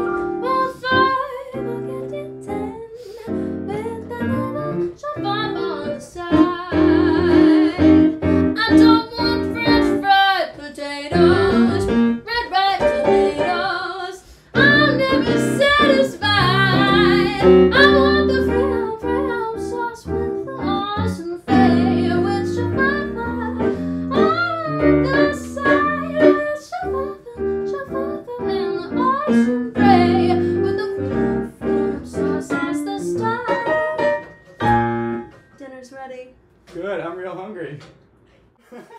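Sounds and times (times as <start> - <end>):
keyboard piano accompaniment: 0.0 - 10.5, 11.1 - 35.5
woman singing: 0.0 - 34.2.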